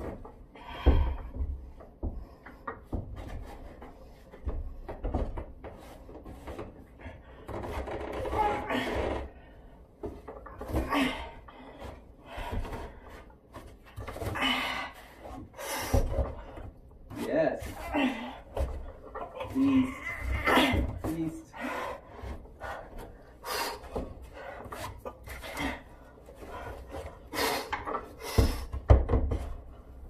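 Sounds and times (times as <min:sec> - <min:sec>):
thump on wooden beams: 0:00.0 - 0:09.3, 0:15.2 - 0:21.2, 0:26.4 - 0:30.0
knocks and rubbing against wood: 0:00.0 - 0:09.4, 0:15.1 - 0:30.0
effortful breaths and grunts: 0:00.0 - 0:30.0.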